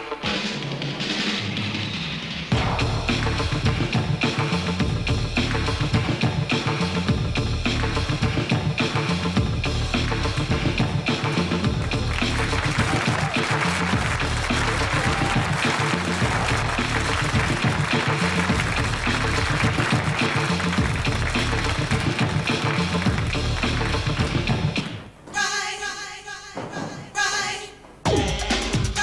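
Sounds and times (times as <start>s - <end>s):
funk dance track: 0.0s - 25.0s
audience applause: 11.7s - 24.9s.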